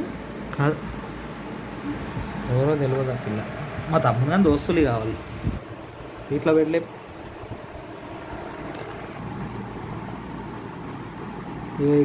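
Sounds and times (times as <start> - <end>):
low rumble-like hiss: 0.0 - 12.0.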